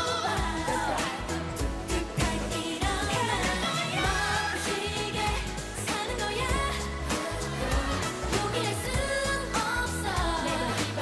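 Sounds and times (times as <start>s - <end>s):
group singing into microphones: 0.0s - 11.0s
pop song with steady beat: 0.0s - 11.0s.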